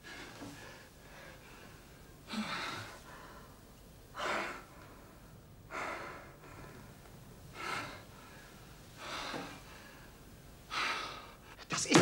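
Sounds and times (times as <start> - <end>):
man breathing heavily: 0.0 - 11.6.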